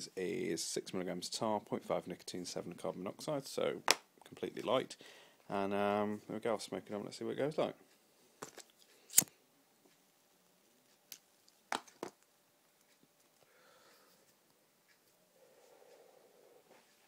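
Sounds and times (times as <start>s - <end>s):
soft breath out: 5.0s - 5.5s, 13.4s - 14.3s, 15.3s - 17.0s.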